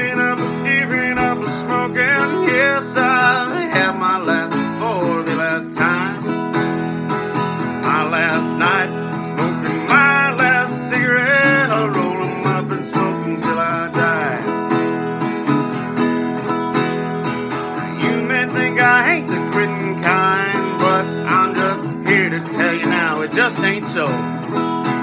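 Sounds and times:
man singing: 0.0 - 6.9, 7.6 - 14.9, 17.5 - 24.4
acoustic guitar strumming: 0.0 - 25.0.

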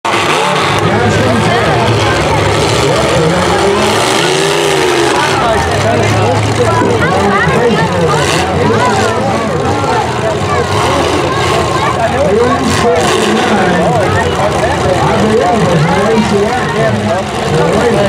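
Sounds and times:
car engines revving: 0.0 - 18.0
crowd chattering: 0.0 - 18.0.

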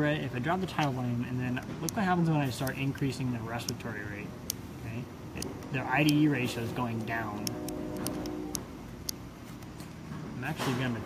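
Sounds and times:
steady tone: 4.2 - 9.4.

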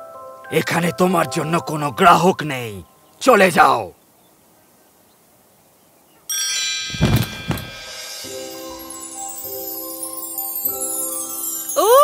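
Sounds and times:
shimmering chime sparkle effect: 6.3 - 12.0
low thud: 6.9 - 7.9.

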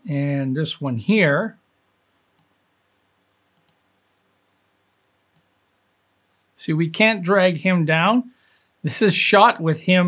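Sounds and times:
faint computer mouse clicks: 2.3 - 2.6, 3.5 - 4.5, 5.3 - 5.6.

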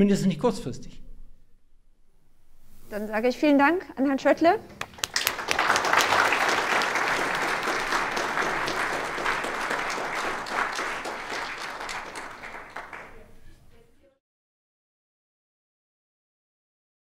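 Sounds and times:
audience applauding: 4.8 - 13.5.

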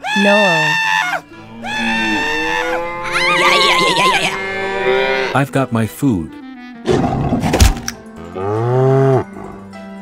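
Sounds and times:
cartoon character screaming: 0.0 - 4.4
background music: 0.0 - 10.0.

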